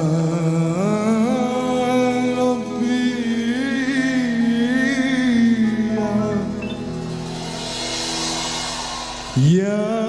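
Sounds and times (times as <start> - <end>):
man singing a long note: 0.0 - 6.8, 9.4 - 10.0.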